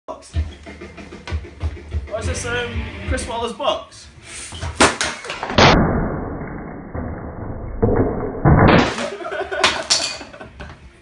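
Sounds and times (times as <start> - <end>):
thud: 4.7 - 9.1
wood breaking crash: 4.8 - 10.2.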